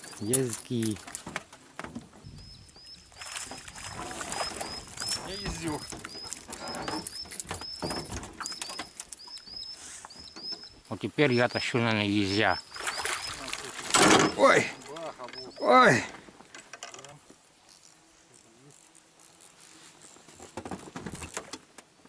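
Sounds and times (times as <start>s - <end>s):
bird chirping: 2.2s - 15.9s.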